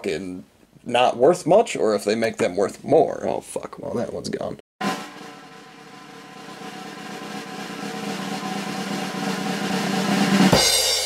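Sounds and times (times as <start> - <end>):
drum roll: 4.8 - 11.0.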